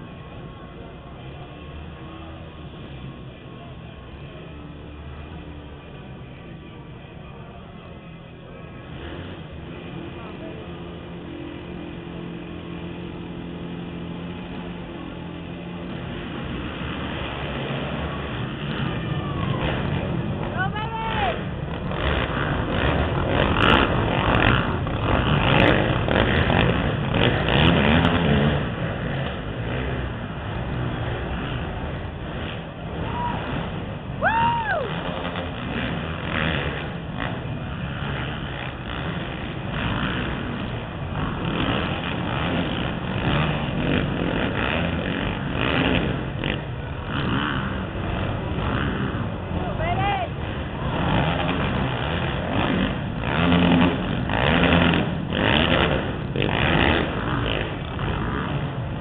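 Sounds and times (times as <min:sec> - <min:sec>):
atv engines revving: 0:00.0 - 0:59.0.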